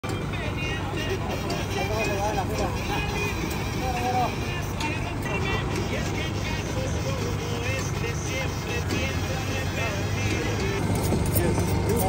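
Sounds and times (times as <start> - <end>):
people talking indistinctly: 0.0 - 12.0
steady low rumble: 9.5 - 12.0.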